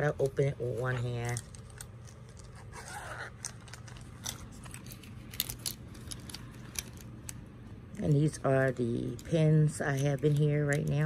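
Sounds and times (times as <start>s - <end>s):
pens clicking and rustling in pouch: 0.1s - 7.4s, 8.1s - 11.0s
zipper rasp: 2.4s - 3.6s.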